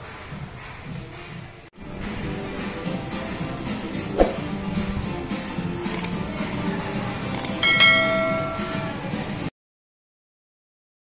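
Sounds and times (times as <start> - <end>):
bell chime: 7.6 - 9.1.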